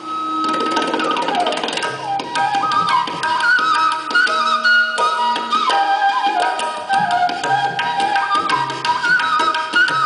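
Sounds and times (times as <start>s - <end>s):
bamboo flute: 0.0s - 10.0s
tabla strokes: 0.0s - 10.0s.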